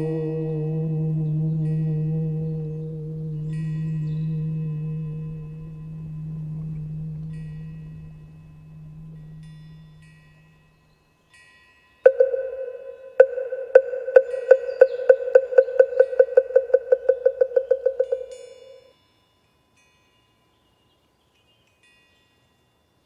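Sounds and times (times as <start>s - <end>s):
deep bell ringing: 0.0s - 11.0s
high chimes tinkling: 1.6s - 23.0s.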